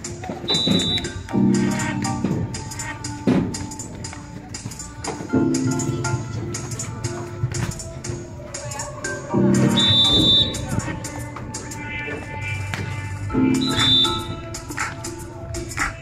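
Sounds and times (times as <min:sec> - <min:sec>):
upbeat music with percussion: 0:00.0 - 0:16.0.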